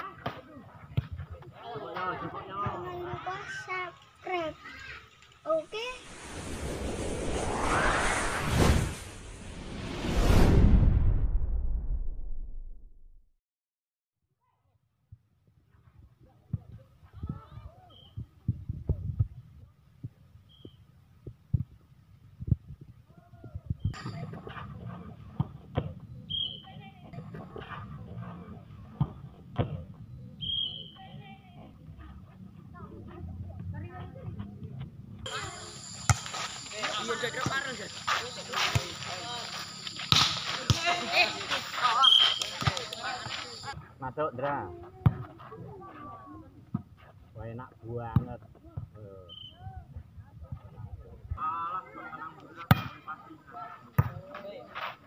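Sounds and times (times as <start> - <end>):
volleyball thud: 40.1 - 41.1, 42.1 - 43.6
volleyball thumps: 42.4 - 43.2.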